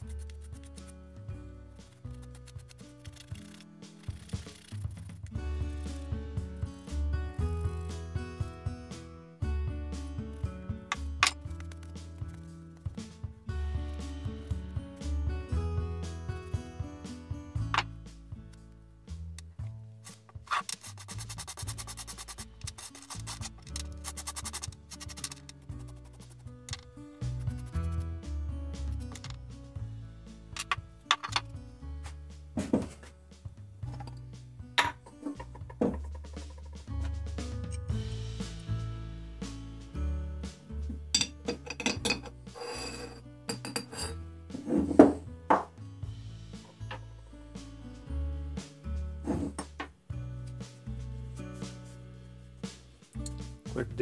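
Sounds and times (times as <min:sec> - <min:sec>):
background music with bass line: 0:00.0 - 0:54.0
rapid scraping strokes: 0:01.8 - 0:06.1, 0:20.0 - 0:26.5, 0:27.2 - 0:28.2
scrubbing metal bit: 0:20.1 - 0:26.8
tools knocking on wooden workbench: 0:32.6 - 0:33.1, 0:34.8 - 0:36.8, 0:43.5 - 0:45.8.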